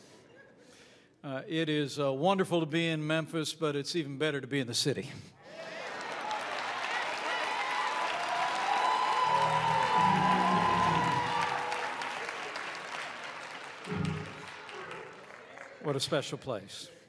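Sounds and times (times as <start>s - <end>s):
congregation applauding: 5.5s - 16.3s.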